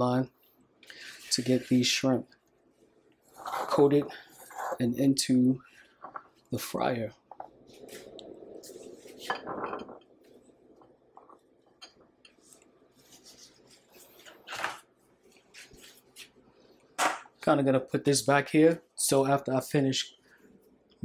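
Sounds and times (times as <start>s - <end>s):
glass bowl scraping on countertop: 3.3s - 4.9s, 7.3s - 10.4s
glass bowls clinking and knocking: 9.2s - 12.1s.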